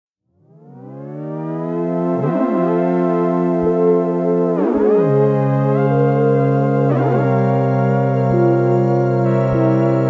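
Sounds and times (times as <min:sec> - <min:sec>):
synthesizer tone gliding upward: 0:00.4 - 0:10.0.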